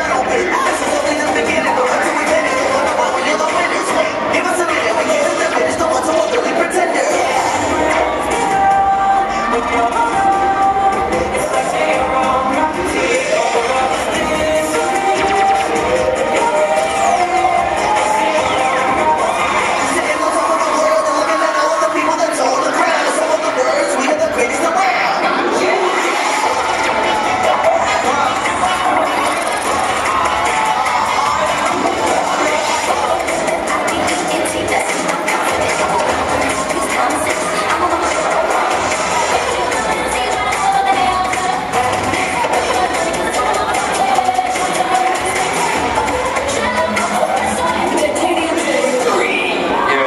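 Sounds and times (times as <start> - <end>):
cheerleading routine music: 0.0 - 50.0
crowd cheering and screaming: 6.9 - 11.6, 12.9 - 50.0.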